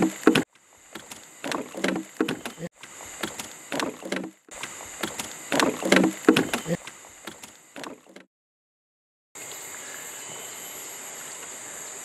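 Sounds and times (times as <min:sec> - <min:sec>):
high insect drone: 0:00.0 - 0:08.2, 0:09.4 - 0:12.0.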